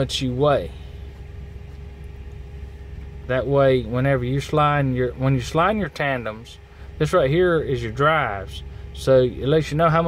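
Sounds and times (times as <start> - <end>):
faint steady hum: 0.0 - 10.0
truck diesel engine idling: 0.0 - 10.0.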